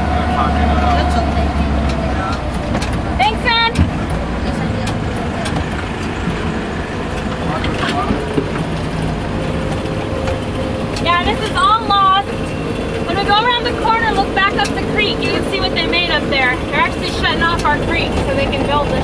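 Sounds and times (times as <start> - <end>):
vehicle engine rumble on dirt track: 0.0 - 19.0.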